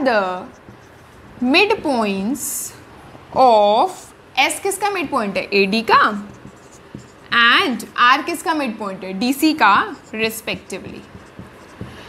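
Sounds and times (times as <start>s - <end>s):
woman speaking: 0.0s - 0.6s, 1.4s - 2.8s, 3.4s - 6.4s, 7.3s - 11.1s
marker writing on whiteboard: 0.0s - 1.9s, 4.0s - 12.0s.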